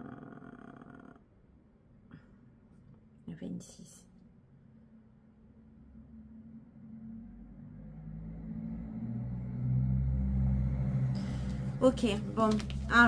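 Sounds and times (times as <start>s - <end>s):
vehicle engine rumble approaching: 5.7s - 13.0s.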